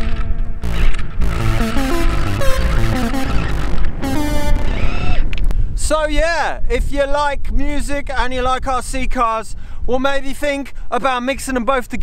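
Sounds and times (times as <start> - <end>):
steady low rumble: 0.0 - 6.1
synthesizer melody: 0.6 - 5.4.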